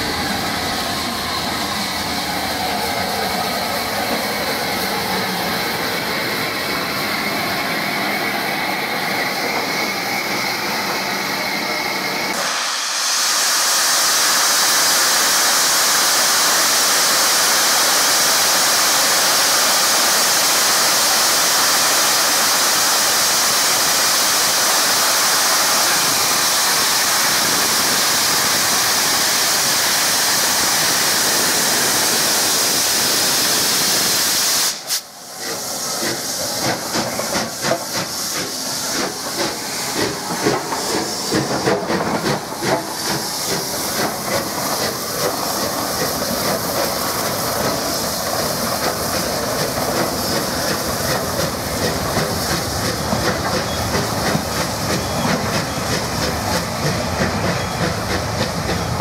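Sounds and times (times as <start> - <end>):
steam locomotive hissing steam: 0.0 - 59.0.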